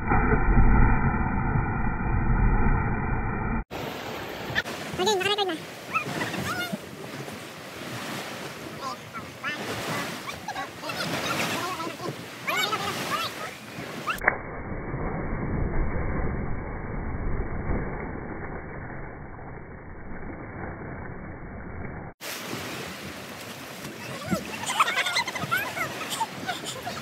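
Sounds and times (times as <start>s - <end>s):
muffled rumbling water: 0.0s - 27.0s
wind: 0.0s - 27.0s
sea waves: 3.7s - 14.3s, 22.2s - 27.0s
people calling out: 8.8s - 14.1s.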